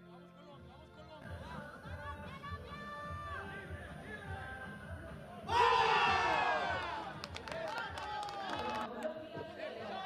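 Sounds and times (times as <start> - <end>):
voices shouting together: 5.5 - 7.1.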